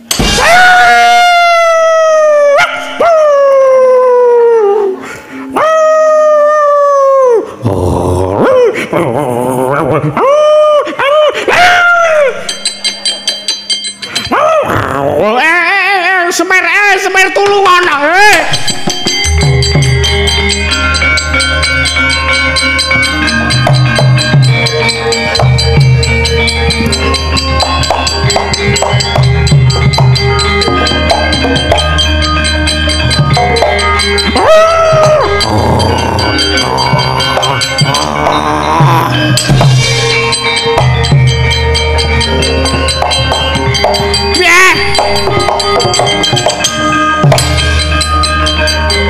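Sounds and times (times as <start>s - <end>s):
drum strokes: 0.0s - 3.0s, 18.4s - 49.0s
ringing metallophone notes: 0.0s - 3.9s, 11.6s - 16.1s, 17.6s - 49.0s
person howling: 0.2s - 12.5s, 14.3s - 15.6s, 34.2s - 40.2s.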